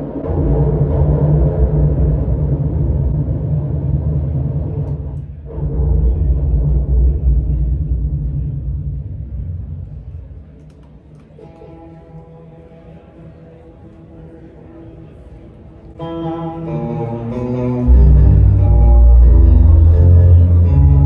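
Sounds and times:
low rumbling guitar drone: 0.0s - 10.7s, 15.8s - 21.0s.

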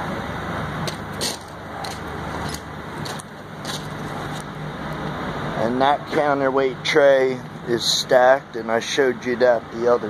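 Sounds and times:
low engine hum: 0.0s - 10.0s
footsteps: 0.9s - 4.5s.

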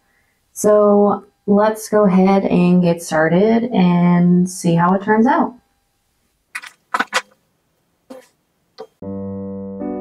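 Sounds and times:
piano music with sustained chords: 9.0s - 10.0s.

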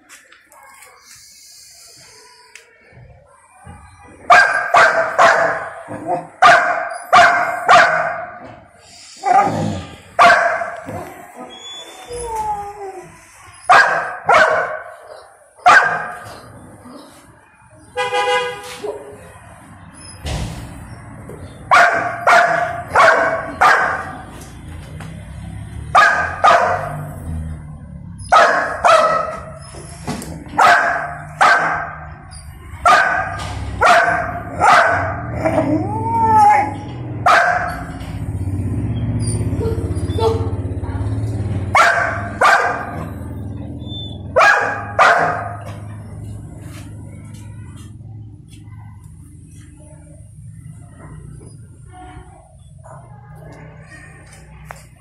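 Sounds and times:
dog barking: 3.7s - 8.4s, 9.2s - 11.1s, 13.6s - 16.4s, 21.7s - 24.3s, 25.9s - 27.1s, 28.2s - 29.6s, 30.5s - 35.6s, 37.2s - 38.0s, 41.7s - 43.3s, 44.1s - 45.9s
dog yelp: 4.2s - 8.2s, 10.2s - 16.2s, 21.7s - 24.1s, 26.0s - 27.1s, 28.2s - 29.8s, 30.6s - 37.9s, 39.2s - 40.6s, 41.8s - 45.7s
dog whining: 10.9s - 13.7s, 35.4s - 36.8s, 43.8s - 44.3s.

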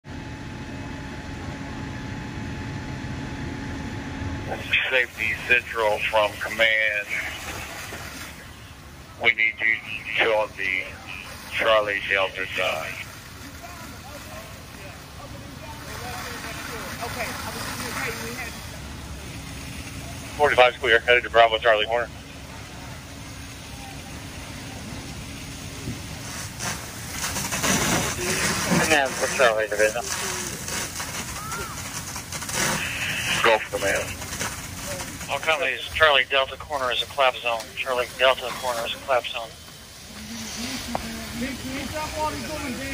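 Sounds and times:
fire truck engines and pumps running: 0.0s - 42.9s
rushing noise: 4.1s - 13.8s, 17.1s - 42.9s.

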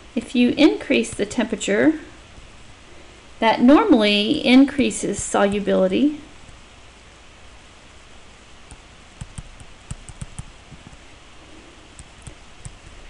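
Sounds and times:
steady hiss: 0.0s - 13.0s
stylus tapping on tablet: 8.6s - 11.0s, 12.0s - 13.0s.

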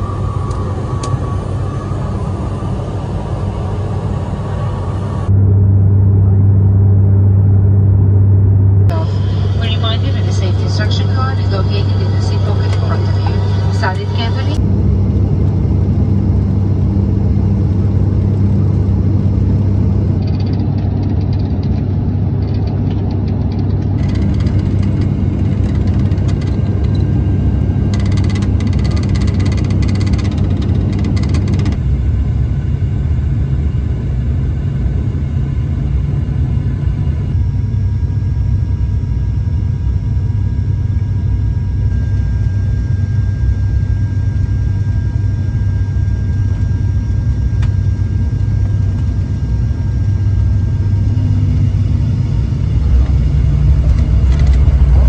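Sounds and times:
propeller plane cabin drone: 0.0s - 55.0s
indistinct voices: 8.9s - 14.6s.

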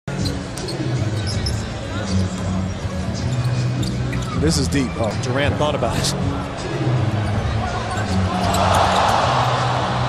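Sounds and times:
background music: 0.1s - 10.0s.

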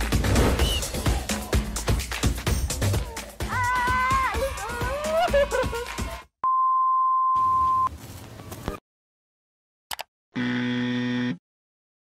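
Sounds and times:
background music: 0.0s - 6.3s.

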